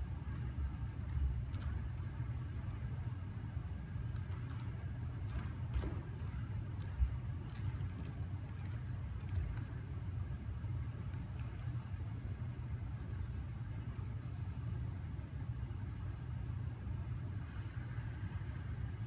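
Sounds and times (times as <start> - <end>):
ventilation running: 0.0 - 19.0.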